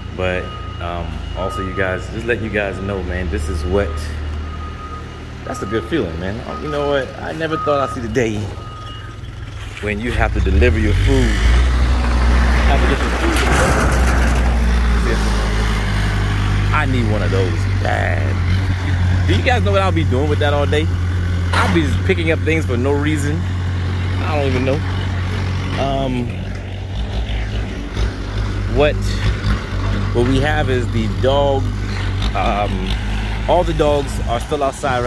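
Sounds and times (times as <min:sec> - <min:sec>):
forklift engine droning: 0:00.0 - 0:35.0.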